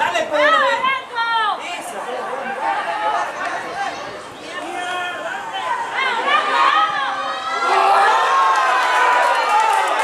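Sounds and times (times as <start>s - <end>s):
men shouting and calling out: 0.0s - 9.2s.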